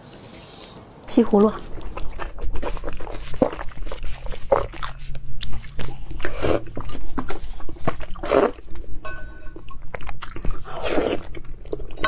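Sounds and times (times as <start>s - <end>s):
wet chewing and smacking: 1.3s - 12.0s.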